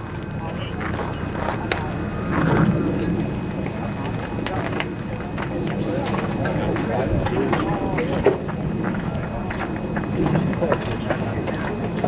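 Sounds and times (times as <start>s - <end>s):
spectators chattering: 0.0s - 12.0s.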